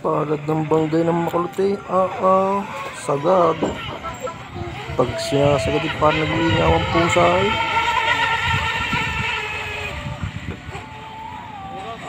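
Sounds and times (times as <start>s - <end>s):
electric motor high-pitched whine: 0.0s - 12.0s.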